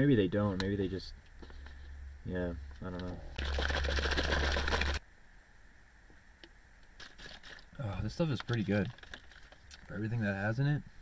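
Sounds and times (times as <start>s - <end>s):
soft handling noises: 6.1s - 11.0s.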